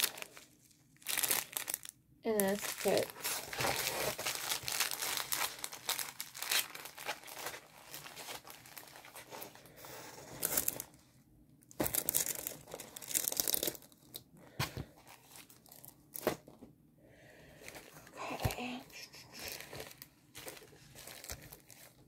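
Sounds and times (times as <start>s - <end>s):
plastic packaging crinkling: 0.0s - 9.7s, 10.3s - 11.0s, 11.7s - 14.2s, 19.3s - 22.0s.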